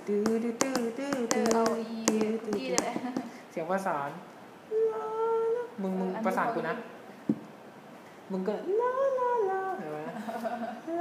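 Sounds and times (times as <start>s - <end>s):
person singing a phrase: 0.0s - 2.9s
person humming: 0.0s - 3.2s, 4.7s - 6.3s, 8.4s - 10.2s.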